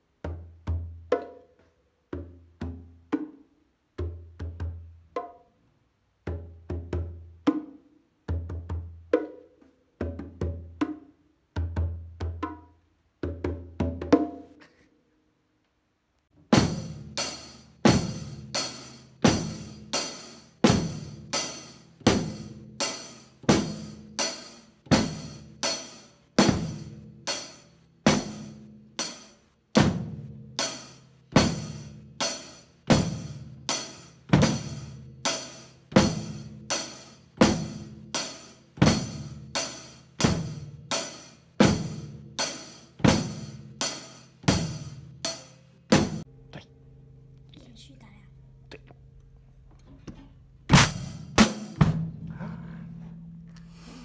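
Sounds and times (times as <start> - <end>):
drum kit steady beat: 16.4 - 46.3, 50.7 - 54.0.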